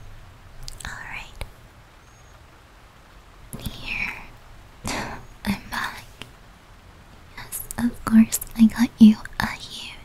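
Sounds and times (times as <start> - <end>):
woman whispering: 0.7 - 1.5, 3.6 - 6.2, 7.3 - 10.0.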